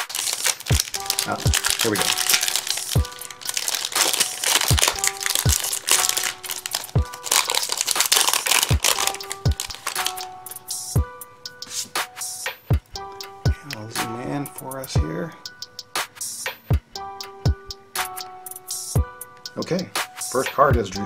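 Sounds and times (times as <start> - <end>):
wrapper crinkling and tearing: 0.0 - 10.3
music with steady beat: 0.0 - 21.0.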